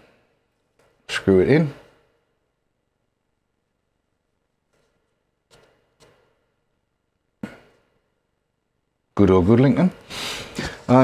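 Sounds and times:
coil screwing handling sounds: 0:04.6 - 0:06.8.

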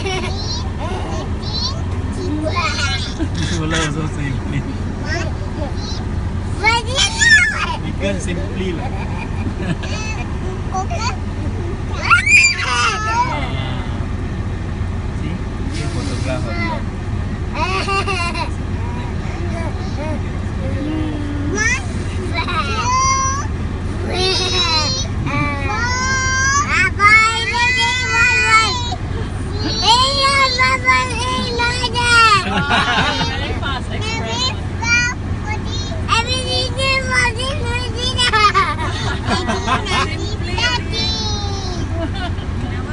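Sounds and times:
car engine idling: 0:00.0 - 0:42.9
small child's voice: 0:00.2 - 0:03.2, 0:05.0 - 0:07.8, 0:10.5 - 0:11.2, 0:24.1 - 0:33.4, 0:34.0 - 0:38.6, 0:39.8 - 0:41.9.

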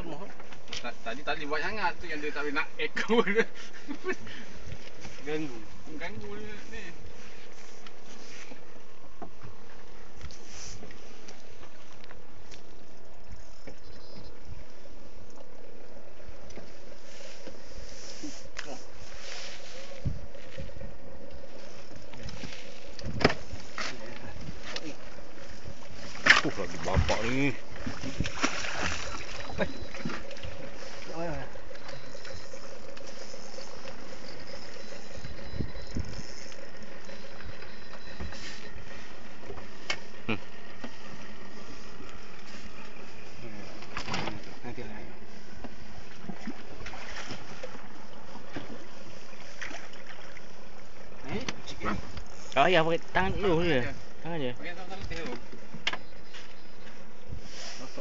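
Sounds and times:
boat engine humming: 0:00.0 - 0:58.0
wind on microphone: 0:18.2 - 0:20.9, 0:22.0 - 0:24.6, 0:25.2 - 0:31.0, 0:33.7 - 0:36.5.

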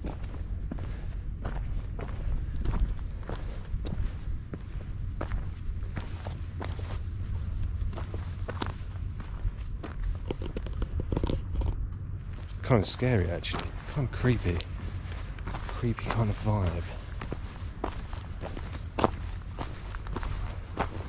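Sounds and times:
footsteps crunching on stony track: 0:00.0 - 0:21.0
steady low rumble: 0:00.0 - 0:21.0.

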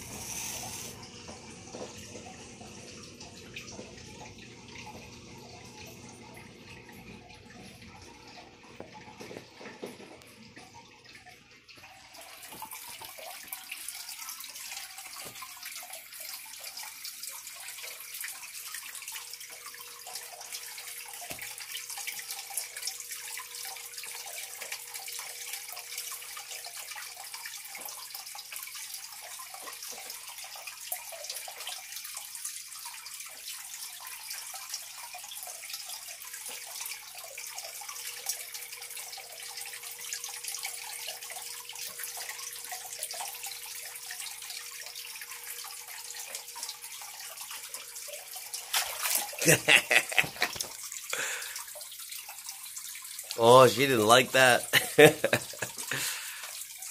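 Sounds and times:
waterfall pouring into pond: 0:00.0 - 0:07.3, 0:11.6 - 0:56.9.

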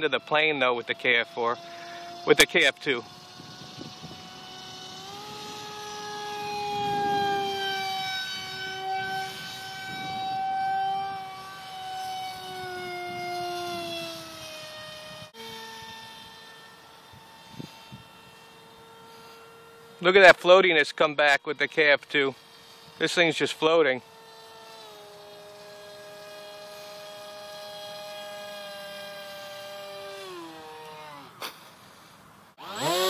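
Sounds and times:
model jet motor whining: 0:00.0 - 0:33.0.

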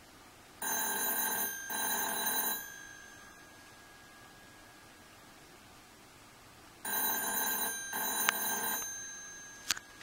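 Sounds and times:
telephone ringing: 0:00.6 - 0:04.6, 0:06.8 - 0:10.0.

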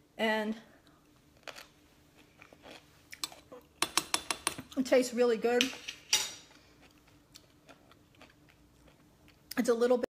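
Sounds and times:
person chewing crunchy food: 0:01.0 - 0:03.8, 0:06.5 - 0:09.6.

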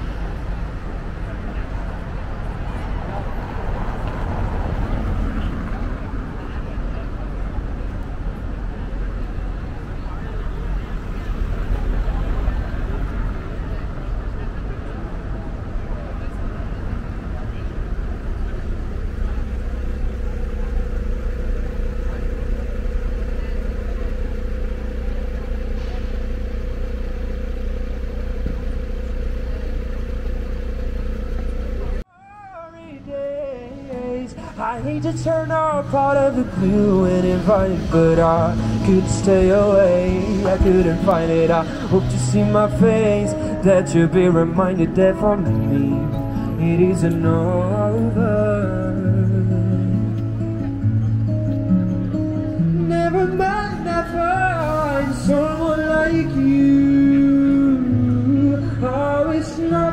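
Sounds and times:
cars passing on cobblestones: 0:00.0 - 0:59.9
low traffic rumble: 0:00.0 - 0:59.9
passers-by talking: 0:00.0 - 0:59.9.

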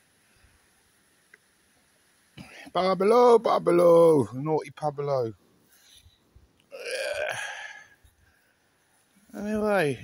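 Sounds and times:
man's breathy throaty vocal sound: 0:06.8 - 0:08.0.

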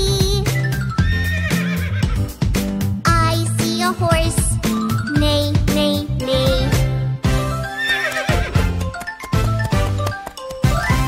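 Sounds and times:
children's song backing track: 0:00.0 - 0:07.8, 0:08.5 - 0:11.0
horse whinny: 0:01.0 - 0:02.2, 0:07.7 - 0:08.6.

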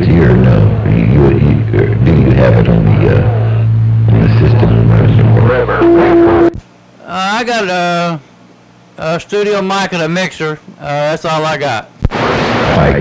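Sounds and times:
low radio hum: 0:00.0 - 0:06.9, 0:12.0 - 0:13.0
echoing voice over radio: 0:04.1 - 0:06.5
short steady beep: 0:05.8 - 0:06.6.

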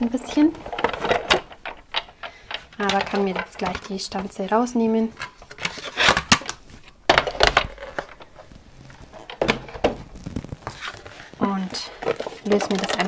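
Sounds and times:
cardstock rustling and crinkling: 0:00.1 - 0:13.0
plastic plates clacking: 0:00.2 - 0:10.1, 0:10.7 - 0:13.0.

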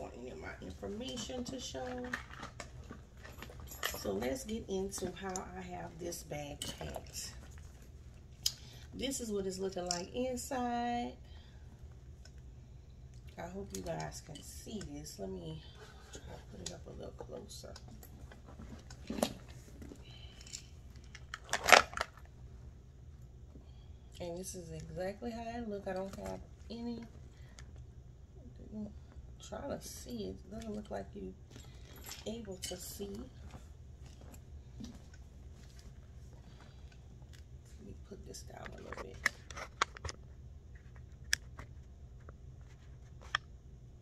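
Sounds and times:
leather bag rustling: 0:00.0 - 0:08.4, 0:15.7 - 0:22.3
metal rings and chain clicking: 0:01.1 - 0:05.5, 0:30.8 - 0:33.0.

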